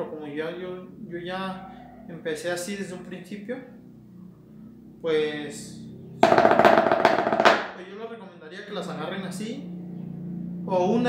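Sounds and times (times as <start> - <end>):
drumstick roll on muffled drum: 6.2 - 7.8.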